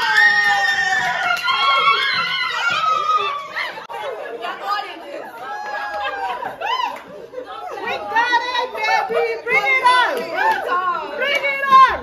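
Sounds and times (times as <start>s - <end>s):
women chattering: 3.0s - 12.0s.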